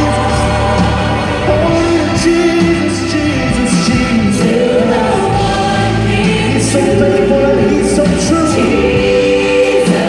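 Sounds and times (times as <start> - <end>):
backing music: 0.0 - 10.0
gospel choir singing: 0.0 - 10.0.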